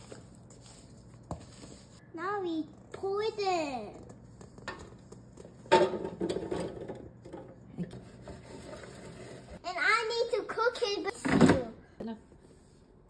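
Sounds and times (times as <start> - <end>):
scraping and rubbing: 0.0 - 2.0, 7.8 - 9.6.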